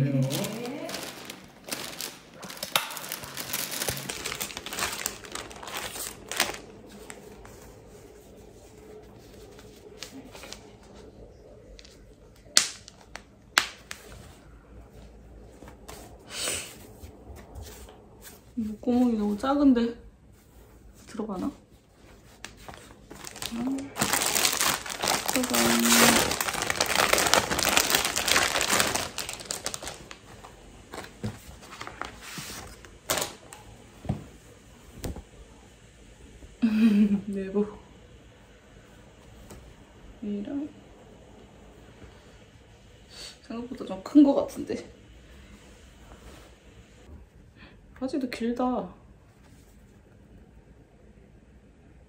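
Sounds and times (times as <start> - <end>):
plastic bag crinkling: 0.0 - 7.4, 22.7 - 33.5.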